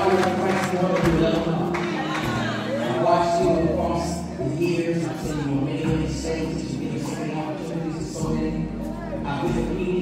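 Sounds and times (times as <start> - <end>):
gospel band playing: 0.0 - 10.0
low bass notes: 0.0 - 10.0.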